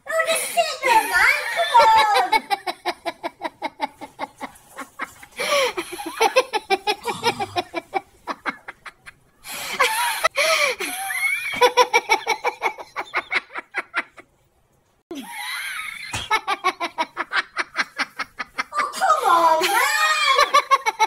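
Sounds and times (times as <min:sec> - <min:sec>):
person laughing: 0:01.6 - 0:09.2.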